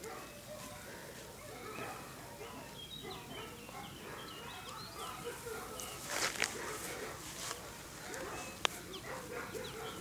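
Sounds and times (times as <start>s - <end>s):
small birds chirping: 0.0s - 6.3s, 7.5s - 10.0s.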